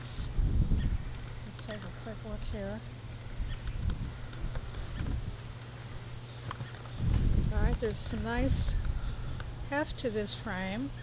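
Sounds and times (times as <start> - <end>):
wind rumbling on microphone: 0.0 - 9.7.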